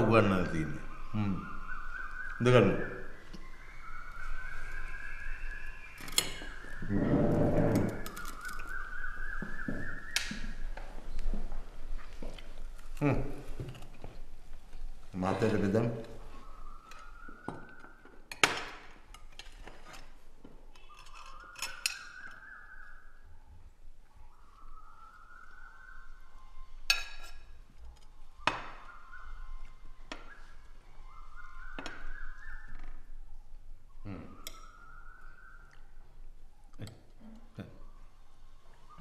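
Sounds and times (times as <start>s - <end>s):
faint high tone climbing: 20.4s - 39.0s.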